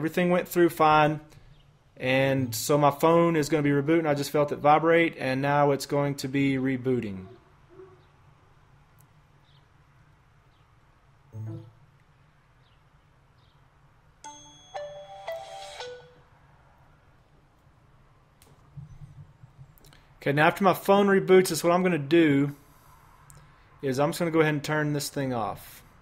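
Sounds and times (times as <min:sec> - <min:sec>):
phone startup chime tones: 0:11.4 - 0:11.8.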